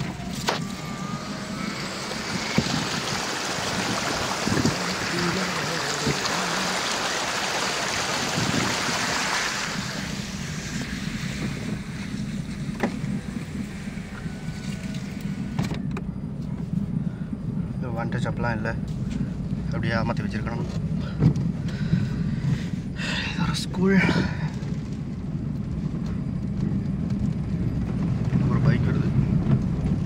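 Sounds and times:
car engine humming: 0.0s - 30.0s
tyres splashing through water: 1.9s - 10.8s.

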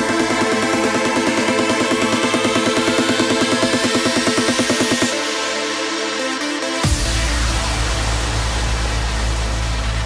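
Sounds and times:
electronic trance music: 0.0s - 10.0s.

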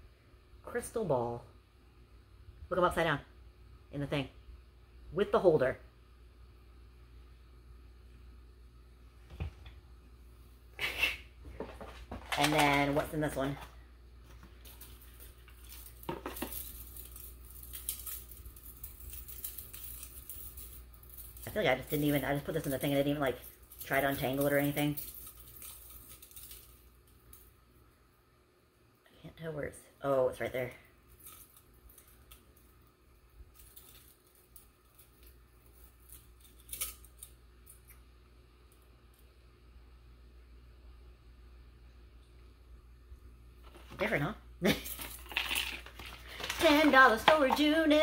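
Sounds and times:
metal chain clinking: 14.6s - 27.4s, 31.1s - 32.4s, 33.5s - 37.3s, 44.7s - 48.0s
chain jingle: 14.7s - 26.9s, 33.5s - 37.3s.

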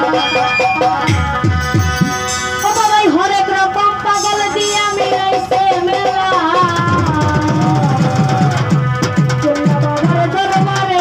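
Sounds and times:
long held melodic note: 0.0s - 5.4s
dhol drum bass strokes: 0.0s - 11.0s.

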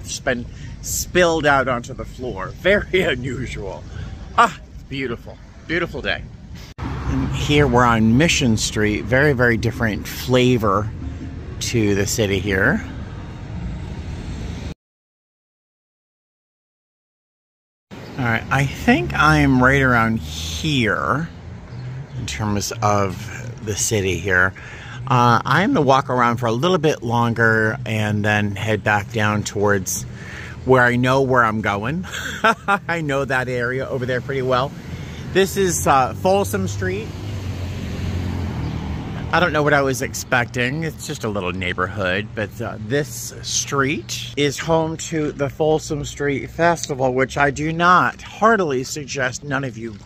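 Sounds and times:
passing cars: 0.0s - 14.8s, 17.9s - 50.0s
road noise: 0.0s - 14.8s, 17.9s - 50.0s
truck engine drone: 31.6s - 40.1s.

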